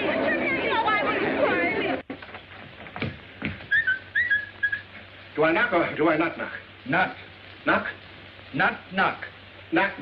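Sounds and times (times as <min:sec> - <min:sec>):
dull thumps: 0:02.0 - 0:03.8.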